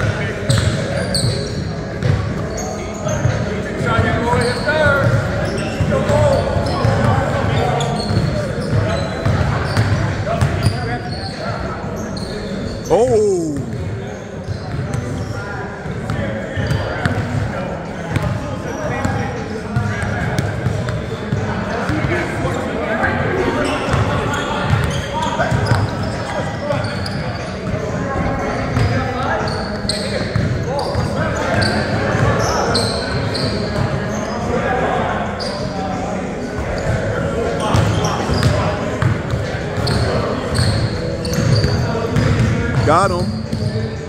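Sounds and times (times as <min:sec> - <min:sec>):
sneakers squeaking: 0:00.0 - 0:15.5, 0:23.4 - 0:34.6, 0:35.2 - 0:35.8, 0:36.4 - 0:44.0
players shouting and chatting: 0:00.0 - 0:44.0.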